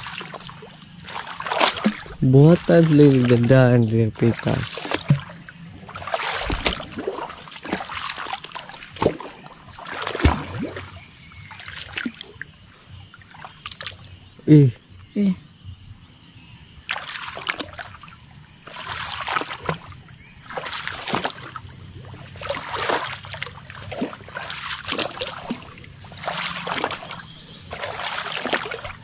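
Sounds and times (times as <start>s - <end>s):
splashing and rustling: 0.0s - 12.5s, 13.1s - 14.2s, 16.9s - 29.0s.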